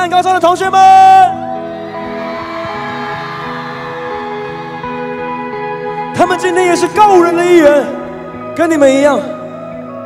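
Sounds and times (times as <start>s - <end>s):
man's amplified voice: 0.0s - 1.5s, 6.1s - 9.5s
faint crowd: 0.0s - 10.0s.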